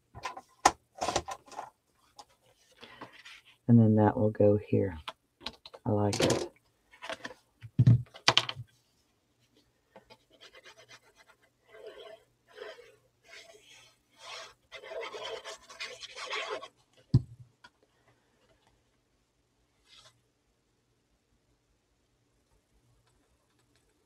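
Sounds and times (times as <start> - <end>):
paper rustling and sliding: 10.0 - 16.8.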